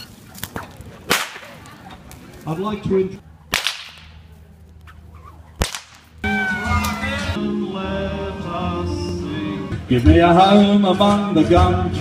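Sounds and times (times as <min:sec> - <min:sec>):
whip cracking: 0:00.4 - 0:01.6, 0:03.5 - 0:04.2, 0:05.6 - 0:06.2
music: 0:06.2 - 0:12.0.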